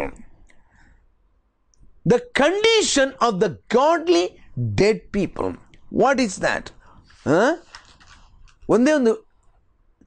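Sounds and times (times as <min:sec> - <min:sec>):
man speaking: 0:00.0 - 0:00.3, 0:02.0 - 0:07.7, 0:08.7 - 0:09.3
soft breath: 0:00.4 - 0:01.3.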